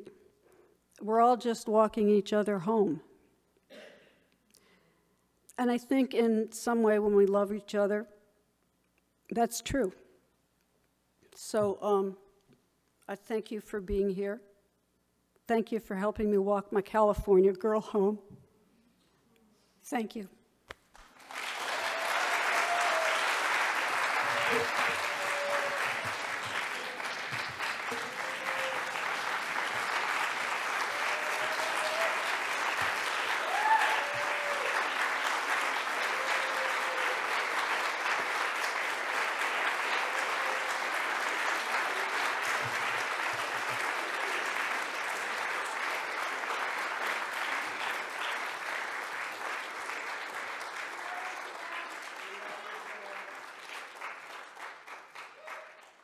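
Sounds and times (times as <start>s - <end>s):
audience applauding: 21.0s - 56.0s
loud shout: 21.6s - 29.3s, 30.7s - 35.0s, 35.9s - 37.6s, 39.8s - 42.5s, 50.9s - 53.3s, 55.4s - 55.8s.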